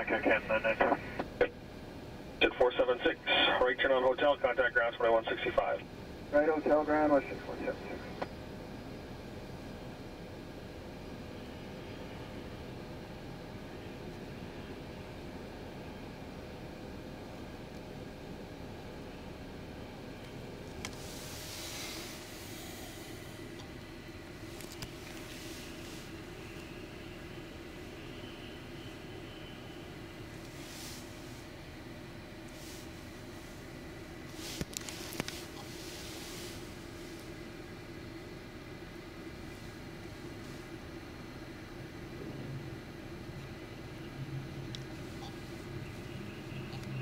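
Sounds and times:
outdoor low rumble and hiss: 0.0 - 47.0.

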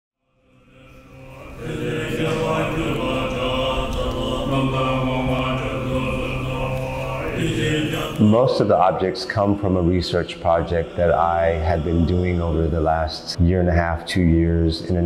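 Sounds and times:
monks chanting in low voices: 0.2 - 15.0.

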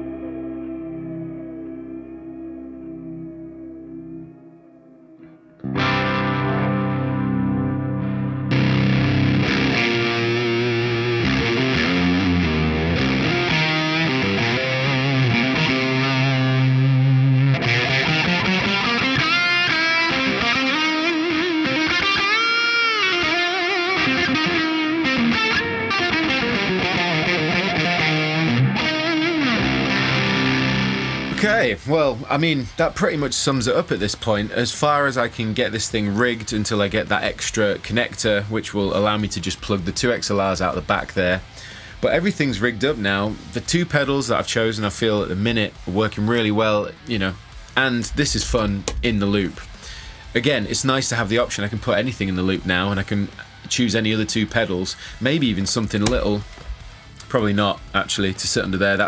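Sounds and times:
ambient guitar chord: 0.0 - 31.7
distorted electric guitar riffing: 0.0 - 32.8, 39.6 - 44.4, 45.0 - 59.0.

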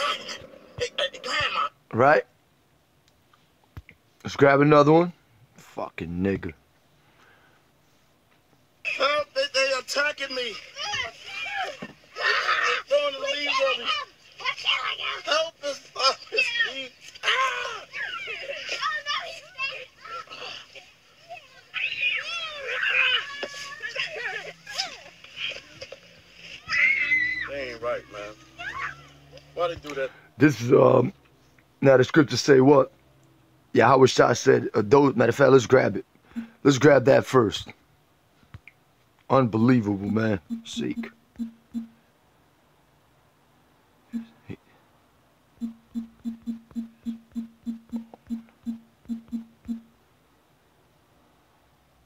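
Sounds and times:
children shrieking and squealing: 10.7 - 14.9, 16.3 - 20.8, 21.4 - 25.8, 26.4 - 29.4
on-screen keyboard key blips: 40.5 - 42.0, 44.2 - 44.4, 45.6 - 49.9.

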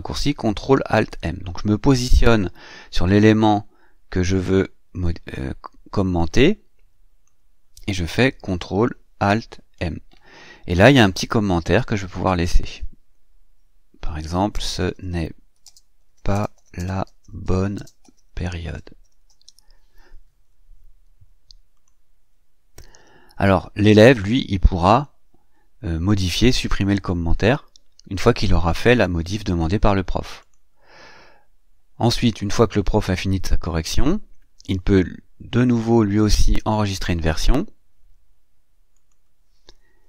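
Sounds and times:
low room hiss: 0.0 - 40.0
low steady hum: 0.0 - 40.0
computer mouse click: 15.6 - 18.3, 19.0 - 19.8.

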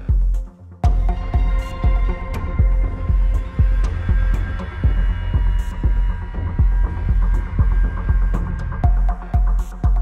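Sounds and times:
electronic music with pulsing bass: 0.0 - 10.0.

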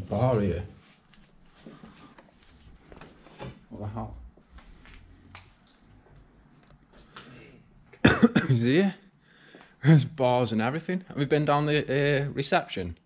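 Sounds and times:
faint low sounds in a room: 0.0 - 13.0.

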